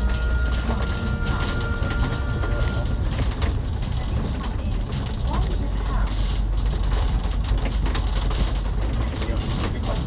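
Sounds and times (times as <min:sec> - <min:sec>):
bus engine and road rumble: 0:00.0 - 0:10.0
rattles and clicks of bus fittings: 0:00.1 - 0:10.0.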